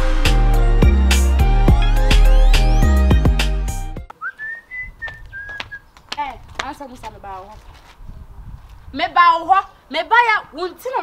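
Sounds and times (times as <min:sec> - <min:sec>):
person whistling: 0:04.1 - 0:05.8.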